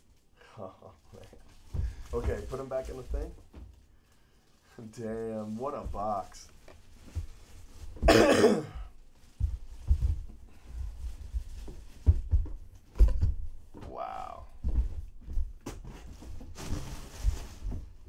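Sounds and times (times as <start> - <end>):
plastic wrapping rustling: 0.1 - 8.2, 8.9 - 18.0
person coughing: 8.0 - 8.9.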